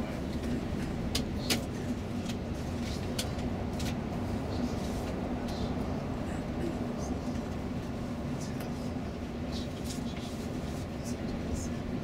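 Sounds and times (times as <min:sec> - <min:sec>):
coach engine and tyres droning: 0:00.0 - 0:12.0.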